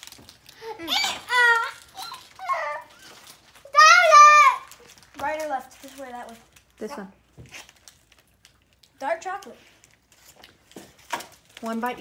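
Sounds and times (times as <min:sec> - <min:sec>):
child vocalizing: 0:00.6 - 0:03.2.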